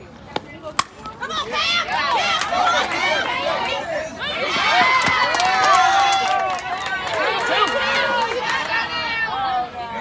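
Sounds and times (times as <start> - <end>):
bat cracking ball: 0.3 - 1.2
spectators shouting and cheering: 1.2 - 10.0.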